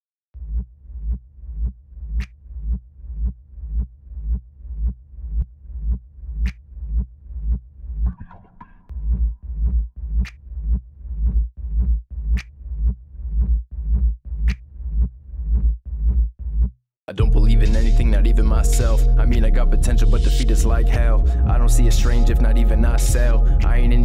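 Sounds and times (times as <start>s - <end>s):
throbbing bass pulse: 17.2s - 24.0s.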